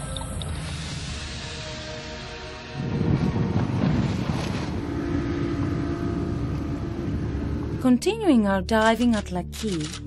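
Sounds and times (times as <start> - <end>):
wind buffeting microphone: 2.8 - 8.0
outboard motor running at speed: 3.0 - 7.8.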